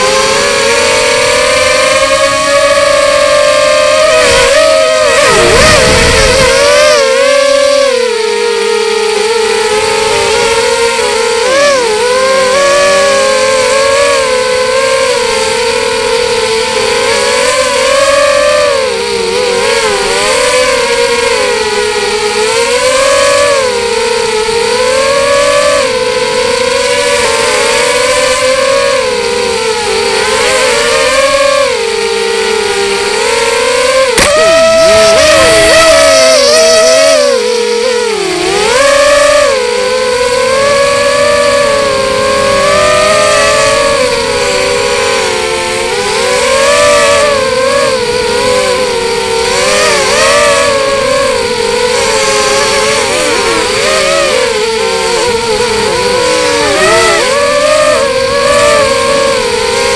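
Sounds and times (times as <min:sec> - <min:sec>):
drone motors whining: 0:00.0 - 0:59.9.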